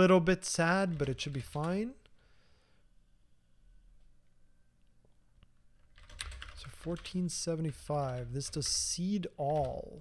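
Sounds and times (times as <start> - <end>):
computer keyboard typing: 0.7 - 2.0, 5.8 - 10.0.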